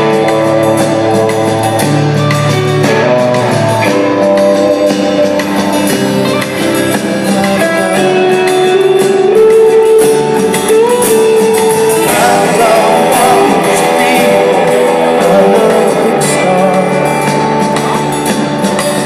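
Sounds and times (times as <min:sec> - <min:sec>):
rock band playing: 0:00.0 - 0:19.0.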